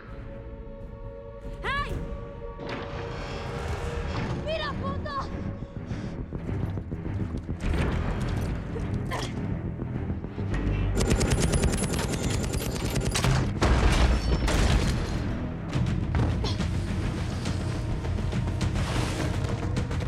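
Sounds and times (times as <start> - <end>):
film music score: 0.0 - 20.0
rapid gunfire: 11.0 - 13.5.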